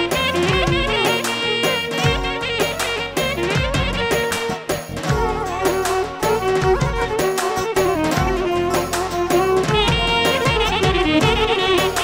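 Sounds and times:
driving percussion beat: 0.0 - 12.0
melodic instrument line: 0.0 - 12.0.

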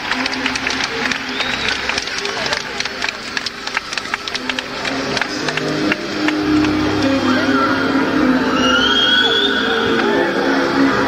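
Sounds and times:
sharp claps: 0.0 - 7.2
sustained keyboard chords: 0.0 - 8.6
crowd noise: 0.0 - 11.0.

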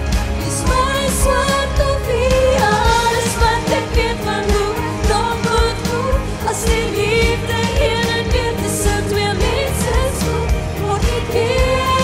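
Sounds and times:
backing music with steady beat: 0.0 - 12.0
woman singing pop song: 0.1 - 12.0.

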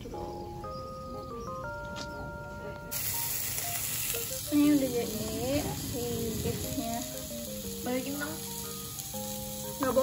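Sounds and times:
soft background music: 0.0 - 10.0
meat sizzling in a pan: 2.9 - 10.0.

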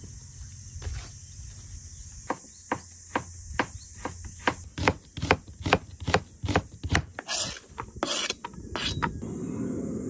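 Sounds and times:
high insect drone: 0.0 - 10.0
knife chopping onion on board: 2.3 - 7.4.

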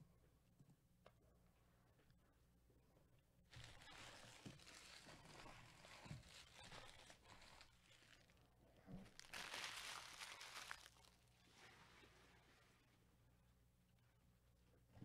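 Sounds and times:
packaging crinkling and rustling: 3.5 - 11.8.

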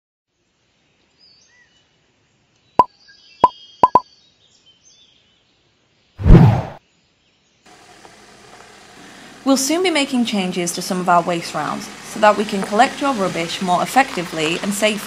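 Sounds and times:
outdoor background: 0.3 - 15.0
faint high chirps: 2.8 - 4.1
short rush of noise: 6.2 - 6.8.

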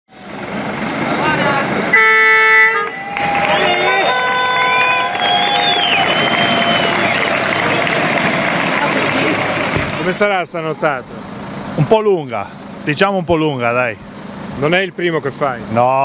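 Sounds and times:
truck air horn: 1.9 - 6.9
crowd of voices: 2.6 - 12.8.

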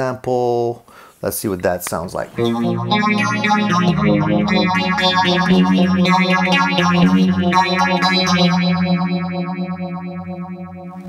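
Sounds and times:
electric guitar with phaser: 2.4 - 11.0.

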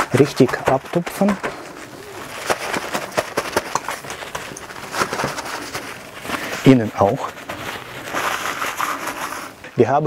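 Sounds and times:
paper towel crinkling: 0.0 - 10.0.

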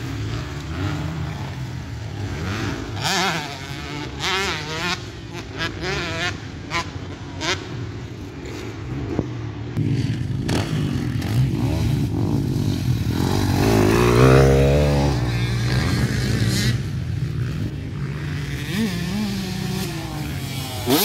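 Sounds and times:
distant dirt bikes: 0.0 - 21.0
dirt bike engine revving hard: 9.8 - 16.9, 18.1 - 21.0.

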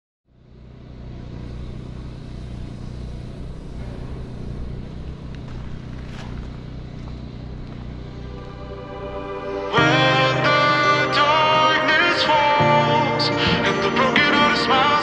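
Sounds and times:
low rumbling drone with hum: 0.3 - 15.0.

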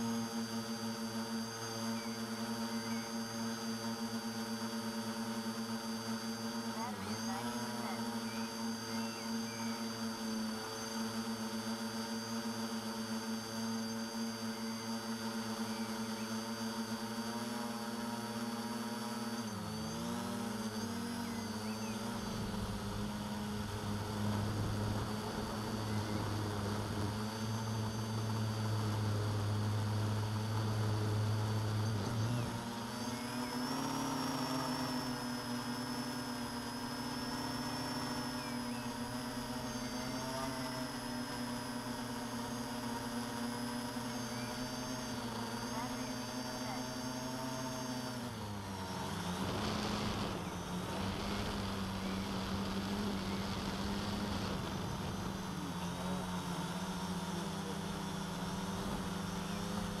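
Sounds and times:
quadcopter motors humming: 0.0 - 60.0.

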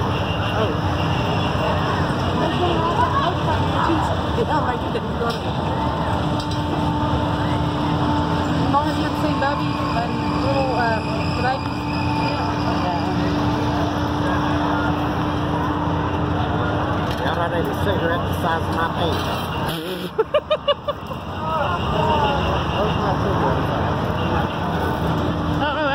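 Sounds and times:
fairground ride machinery rumble: 0.0 - 25.9
people talking: 1.6 - 5.8, 8.6 - 14.9, 21.4 - 24.6, 25.6 - 25.9.

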